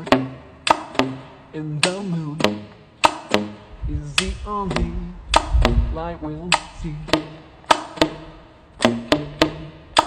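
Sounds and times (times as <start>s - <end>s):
saxophone percussive pops: 0.0s - 5.9s, 6.5s - 10.0s
sung phrases: 0.0s - 10.0s
low saxophone bass notes: 3.4s - 7.2s.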